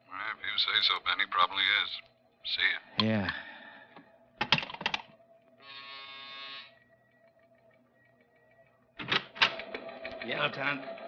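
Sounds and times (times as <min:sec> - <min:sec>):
buzzer sounding: 0:05.6 - 0:06.8.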